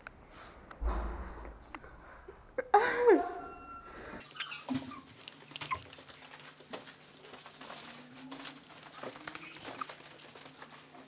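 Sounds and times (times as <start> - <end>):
rustling: 4.2 - 11.0.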